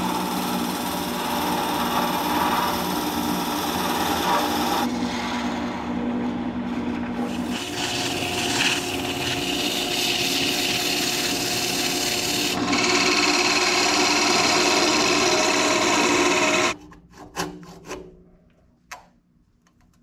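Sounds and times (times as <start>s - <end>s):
wood lathe motor hum: 0.0s - 5.4s, 7.3s - 16.8s
turning tool scraping wood: 0.1s - 5.6s.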